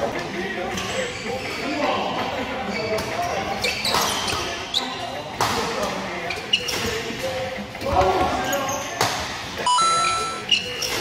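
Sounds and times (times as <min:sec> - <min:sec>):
shoes squeaking on court floor: 0:02.6 - 0:05.2, 0:06.3 - 0:07.1, 0:09.8 - 0:11.0
electronic tone: 0:09.7 - 0:10.4.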